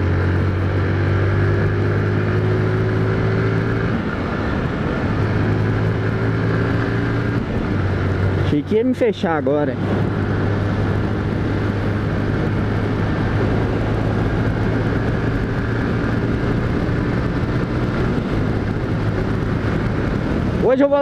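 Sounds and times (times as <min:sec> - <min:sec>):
motorcycle engine running: 0:00.0 - 0:21.0
road noise: 0:00.0 - 0:21.0
wind on microphone: 0:00.0 - 0:21.0.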